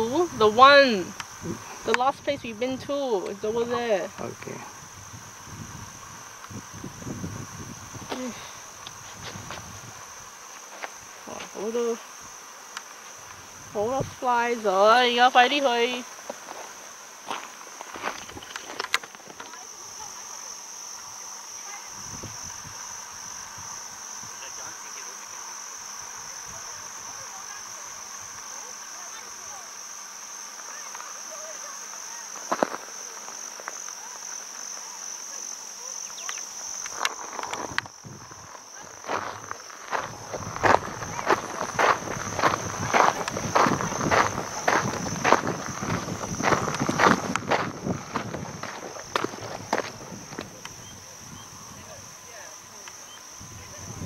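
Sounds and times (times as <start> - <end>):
high-pitched insect chorus: 0.0 - 54.0
footsteps on sandy dirt: 8.0 - 11.6, 16.0 - 19.7, 36.7 - 50.7.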